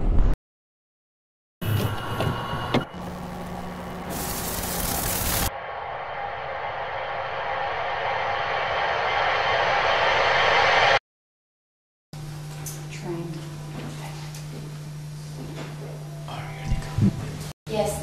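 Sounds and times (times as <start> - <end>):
hissing swell: 3.1 - 11.0
short noisy burst: 4.0 - 11.0.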